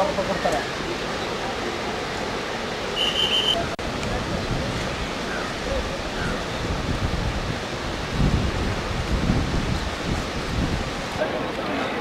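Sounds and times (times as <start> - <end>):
waterfall rushing: 0.0 - 12.0
wind buffeting microphone: 3.6 - 12.0.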